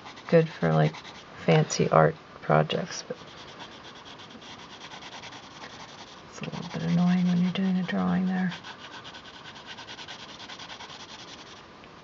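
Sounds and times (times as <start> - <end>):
pencil scratching on paper: 0.0 - 1.2, 3.2 - 11.6.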